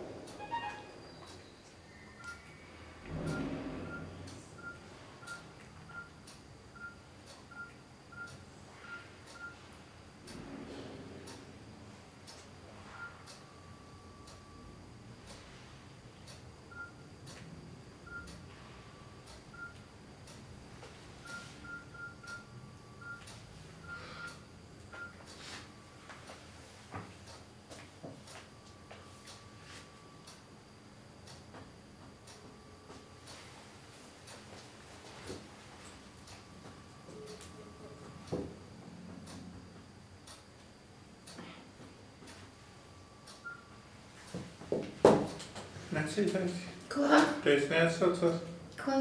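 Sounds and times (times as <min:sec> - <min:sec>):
low room hum: 0:00.0 - 0:49.0
phone keypad beeps: 0:06.8 - 0:09.6, 0:16.7 - 0:17.0, 0:18.1 - 0:18.4
faint regular clicks: 0:31.2 - 0:32.5, 0:40.2 - 0:41.4.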